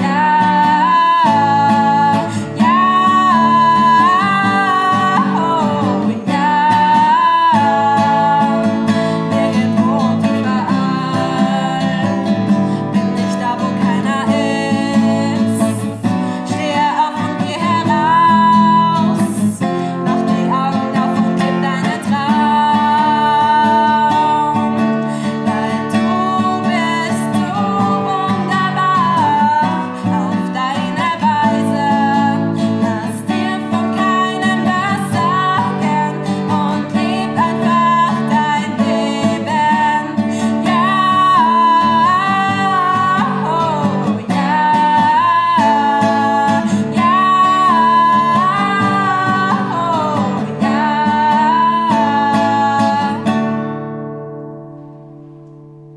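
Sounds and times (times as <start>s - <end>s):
woman singing: 0.0s - 54.2s
strummed nylon-string guitar: 0.0s - 55.9s.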